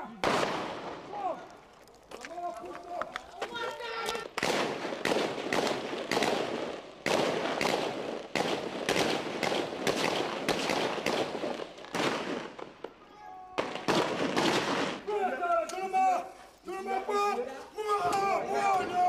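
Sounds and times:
rapid gunfire with echo: 0.2s - 1.0s, 4.4s - 12.8s, 13.6s - 15.1s.

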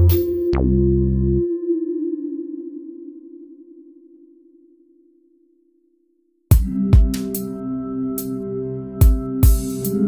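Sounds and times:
wavering synthesizer tone: 0.0s - 5.0s.

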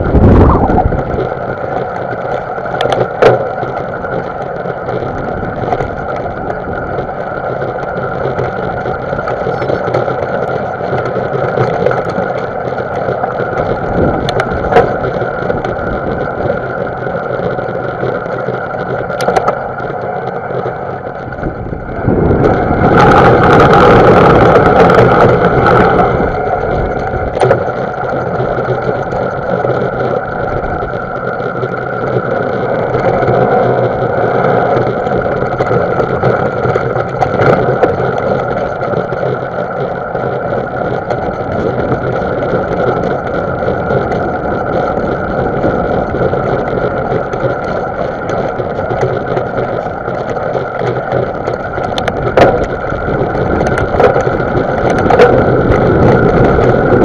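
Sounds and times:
wind and bike riding noise: 0.0s - 57.0s.

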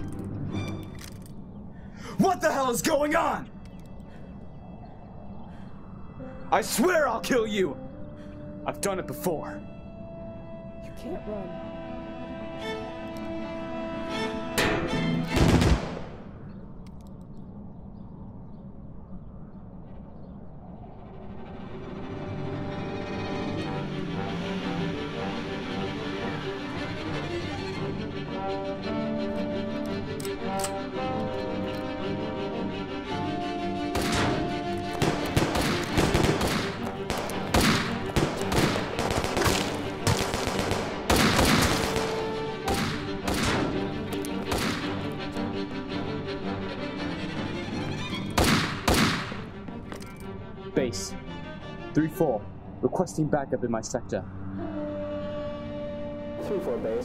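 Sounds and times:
film score music: 0.0s - 57.0s
automatic gunfire: 35.0s - 43.8s.

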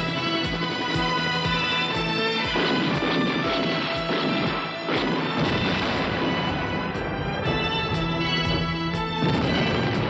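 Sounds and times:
action trailer music: 0.0s - 10.0s
helicopter explosion crash: 2.6s - 8.6s, 9.2s - 10.0s.

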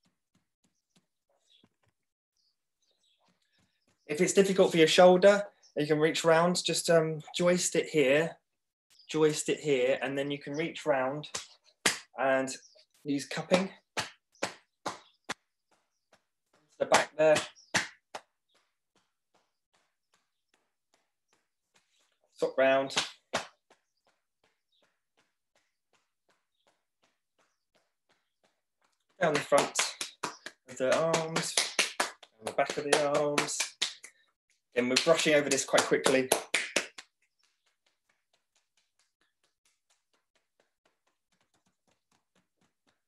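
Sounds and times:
fingers patting on body: 11.3s - 12.2s, 13.4s - 43.0s.

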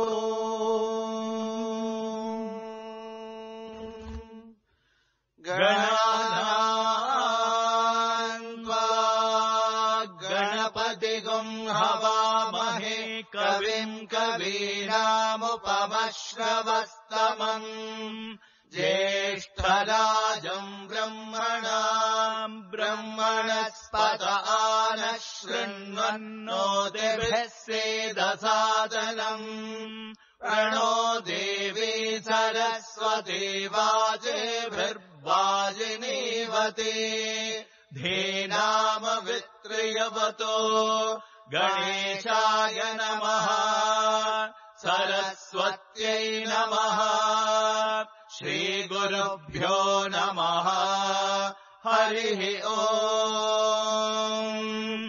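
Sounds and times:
person chanting mantras: 0.0s - 4.6s, 5.4s - 55.0s.

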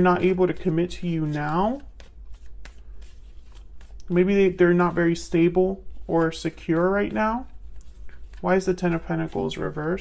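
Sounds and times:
cards being shuffled: 0.0s - 10.0s.

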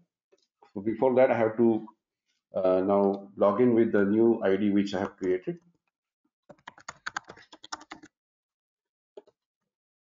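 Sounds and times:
keyboard typing: 6.5s - 8.1s.

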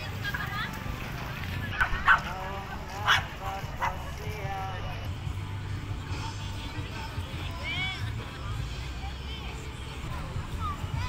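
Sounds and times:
dog barking: 1.8s - 2.4s, 3.0s - 4.1s.

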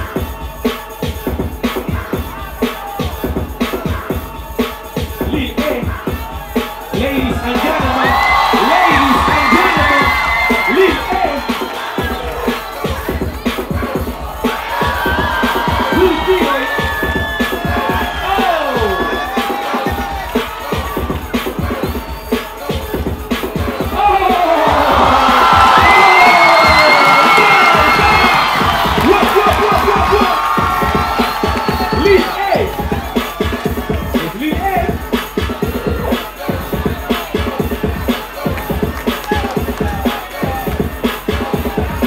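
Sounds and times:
crowd cheering and shouting: 0.0s - 42.0s
music with steady beat: 0.0s - 42.0s.

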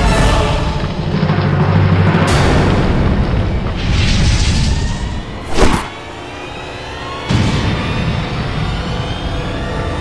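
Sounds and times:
whoosh sound effect: 5.4s - 6.0s.

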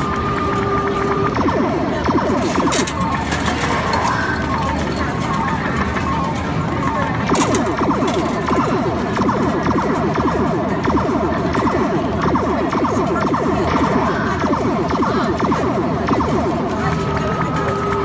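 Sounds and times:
arcade game music: 0.0s - 18.0s.

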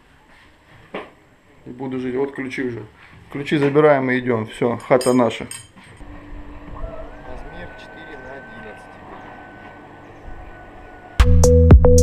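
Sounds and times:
thin high whine: 6.0s - 11.2s
faint indistinct voices: 6.7s - 11.2s.

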